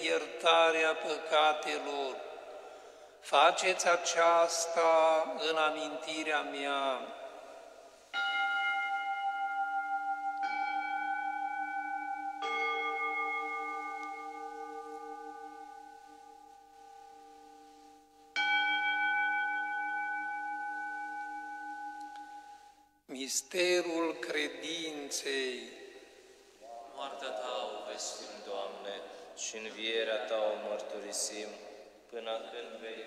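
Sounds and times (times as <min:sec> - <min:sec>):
altar bells ringing: 0:08.1 - 0:22.9.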